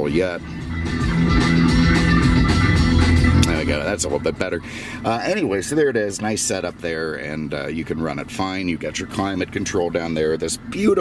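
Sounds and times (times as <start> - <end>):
song playing through car speakers: 0.0 - 11.0.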